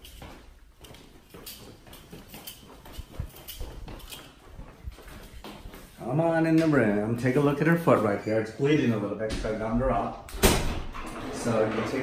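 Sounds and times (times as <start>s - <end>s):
footsteps walking: 0.0s - 8.2s.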